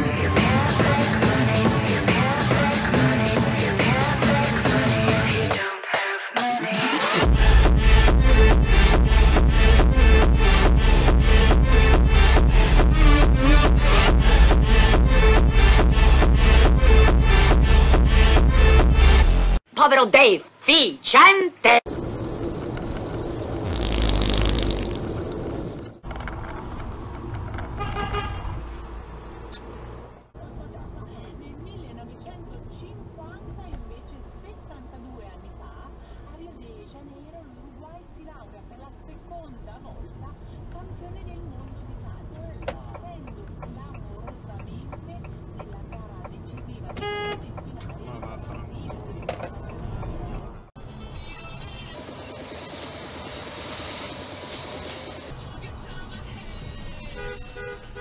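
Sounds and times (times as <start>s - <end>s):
car road and engine noise: 0.0s - 5.6s, 7.2s - 19.7s, 21.8s - 58.0s
car horn: 27.7s - 28.6s, 46.9s - 47.6s, 56.8s - 58.0s.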